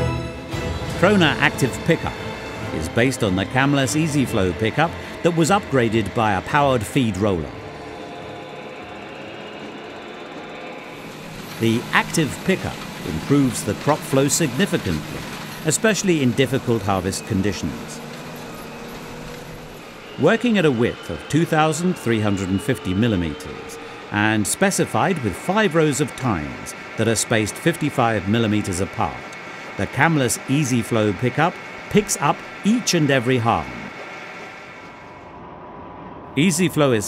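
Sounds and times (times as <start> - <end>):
baler mechanical drone: 0.3 - 37.0.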